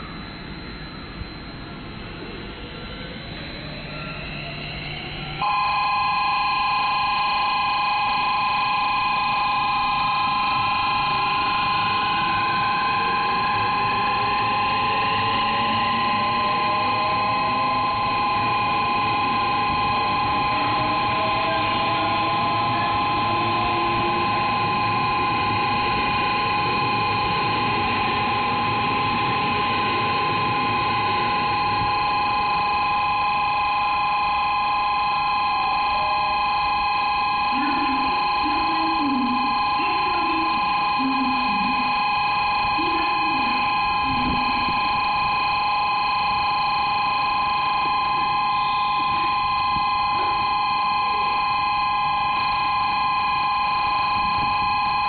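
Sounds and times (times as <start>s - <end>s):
electric train motors whining: 0.0s - 55.0s
electronic platform tone: 2.9s - 55.0s.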